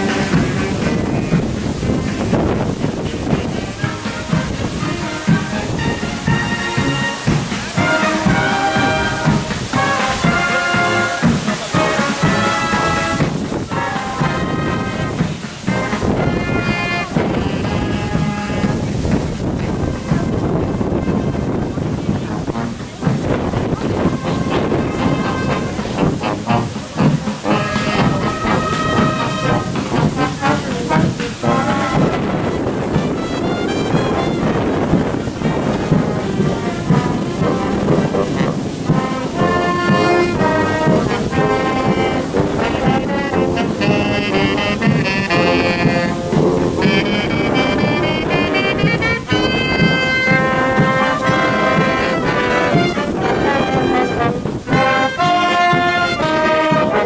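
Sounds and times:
brass band playing processional music: 0.0s - 57.0s.

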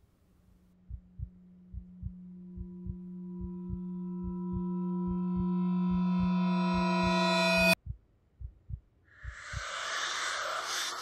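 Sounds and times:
low sustained note: 0.7s - 7.8s
heartbeat-like double thump: 0.8s - 5.5s, 7.7s - 9.8s.

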